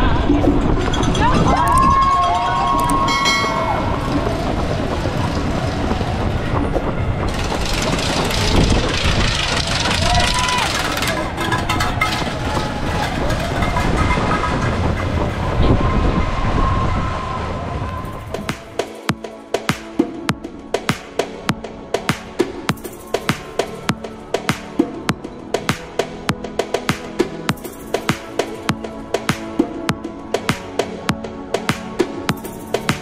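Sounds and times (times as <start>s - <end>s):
low rumble of wind: 0.0s - 30.4s
music: 0.0s - 33.0s
many feet running on street: 1.5s - 15.9s
spectators' voices and shouts: 8.1s - 14.6s.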